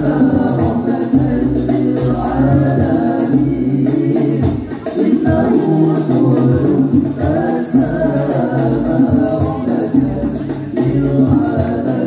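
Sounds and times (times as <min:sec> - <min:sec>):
hand-struck frame drums: 0:00.0 - 0:12.0
men singing in unison: 0:00.0 - 0:12.0.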